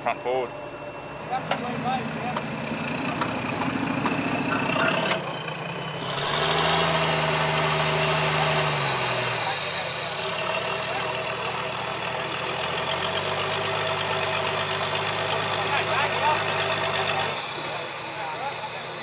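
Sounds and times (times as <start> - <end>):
engine revving: 0.0 - 19.0
high whine: 14.9 - 19.0.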